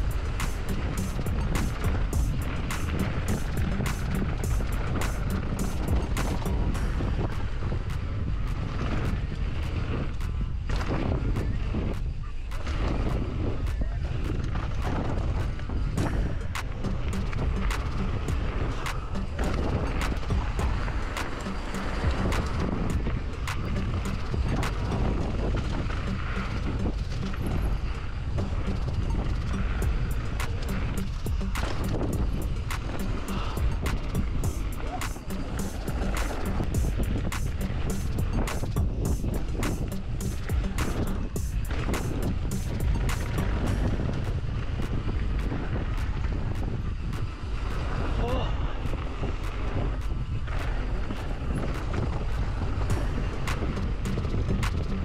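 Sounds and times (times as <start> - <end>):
bike rattling clicks: 0.0 - 12.8, 13.6 - 47.5
bike tyres rumbling: 0.0 - 55.0
wind on microphone: 0.0 - 55.0.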